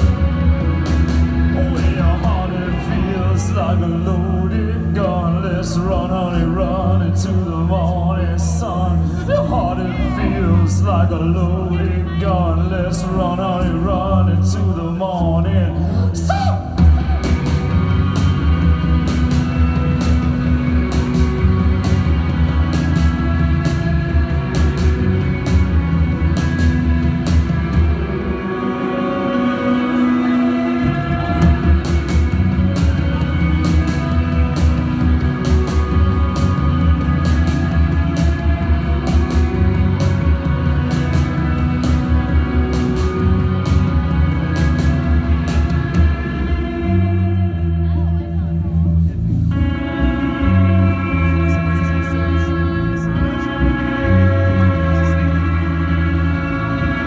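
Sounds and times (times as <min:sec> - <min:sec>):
bass guitar: 0:00.0 - 0:57.0
rock band playing: 0:00.0 - 0:57.0.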